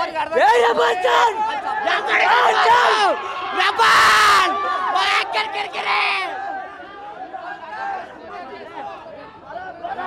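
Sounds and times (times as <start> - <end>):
crowd of men chattering: 0.0 - 10.0
loud shout: 0.0 - 10.0.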